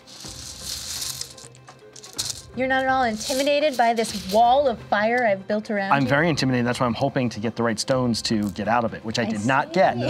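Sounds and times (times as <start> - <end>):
cloth rustling: 0.0 - 4.5
game stones rattling in a bag: 0.0 - 4.5.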